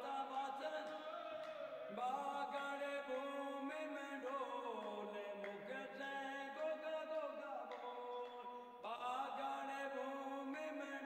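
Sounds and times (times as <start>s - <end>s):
voices chanting devotional song: 0.0s - 11.0s.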